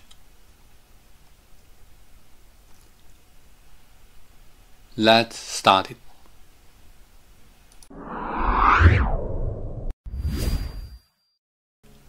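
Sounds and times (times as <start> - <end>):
whoosh sound effect: 7.9 - 10.6.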